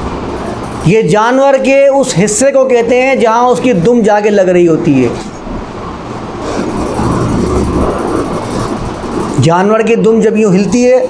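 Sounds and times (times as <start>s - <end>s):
vehicle rumble: 5.2s - 9.5s.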